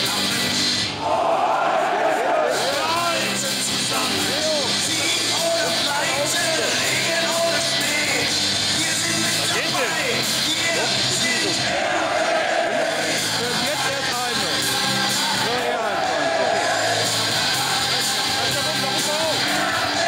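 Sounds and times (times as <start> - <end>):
crowd singing and shouting: 0.0 - 20.0
music over stadium loudspeakers: 0.0 - 20.0.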